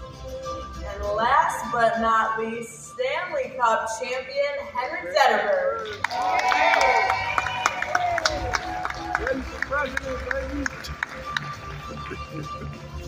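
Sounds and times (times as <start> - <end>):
music playing: 0.0 - 13.0
audience clapping: 5.6 - 13.0.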